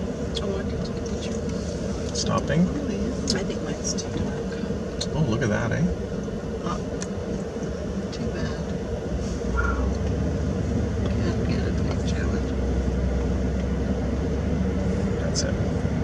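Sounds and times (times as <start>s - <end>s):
car engine and road rumble: 0.0s - 16.0s.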